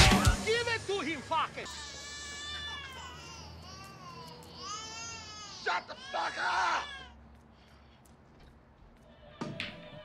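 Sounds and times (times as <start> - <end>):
baby crying: 1.6 - 7.2.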